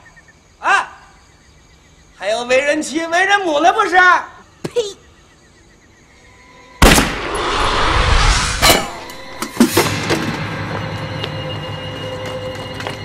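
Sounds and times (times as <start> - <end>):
tense film music: 9.3 - 13.0.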